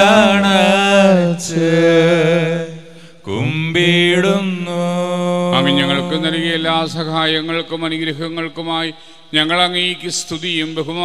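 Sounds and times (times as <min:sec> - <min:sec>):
priest chanting a prayer: 0:03.3 - 0:11.0.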